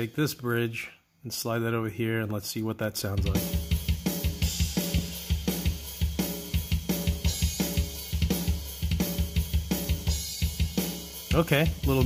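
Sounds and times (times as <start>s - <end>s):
fast double bass drum: 3.2s - 12.0s
snare and cymbal hits: 3.2s - 12.0s.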